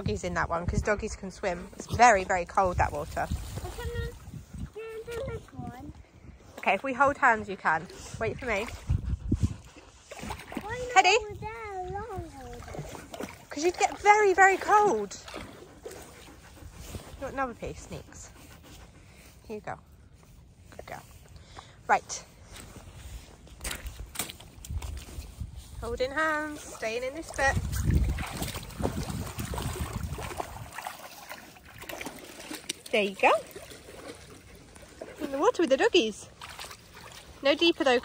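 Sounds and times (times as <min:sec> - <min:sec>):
soft water splashes: 0:00.0 - 0:19.4, 0:22.2 - 0:38.0
water sloshing around dog's legs: 0:00.0 - 0:38.0.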